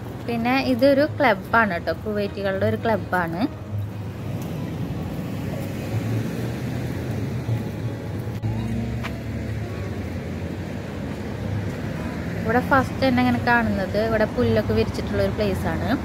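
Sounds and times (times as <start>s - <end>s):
road traffic: 0.0s - 16.0s.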